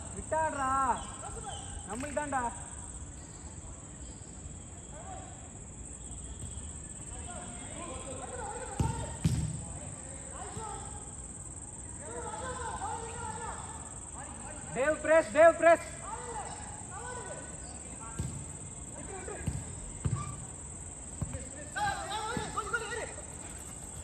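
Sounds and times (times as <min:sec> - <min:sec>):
ball being kicked: 0:08.8 - 0:09.6, 0:18.2 - 0:18.5, 0:19.3 - 0:20.4
loud close shouts: 0:10.2 - 0:11.2, 0:11.9 - 0:18.2, 0:20.0 - 0:20.6, 0:21.4 - 0:23.7
players calling out: 0:11.8 - 0:24.0.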